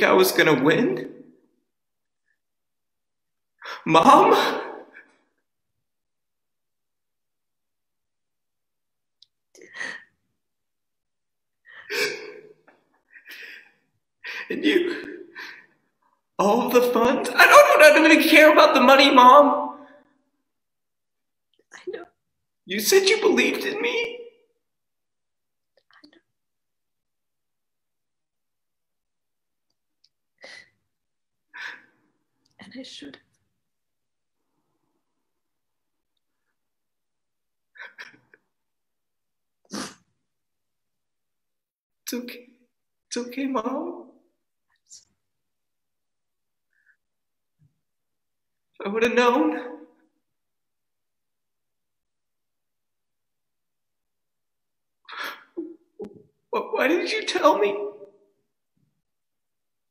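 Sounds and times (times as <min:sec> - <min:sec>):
person sniffling: 0:39.7 - 0:40.1.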